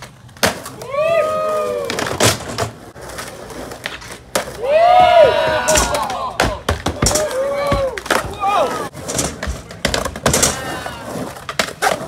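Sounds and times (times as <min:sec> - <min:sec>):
skateboard clacks: 0:00.0 - 0:12.0
skateboard rolling on a ramp: 0:00.0 - 0:12.0
person yelling: 0:04.6 - 0:08.9.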